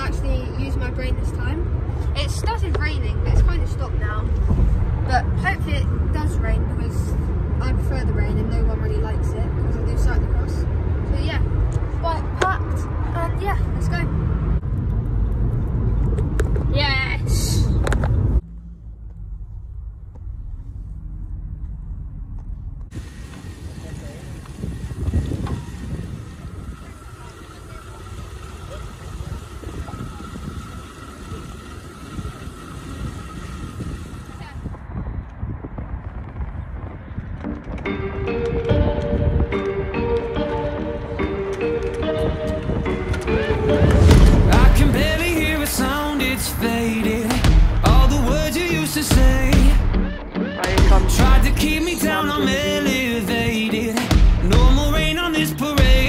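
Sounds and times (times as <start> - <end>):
car road and wind noise: 0.0 - 56.0
bicycle roller whirr: 22.9 - 40.6.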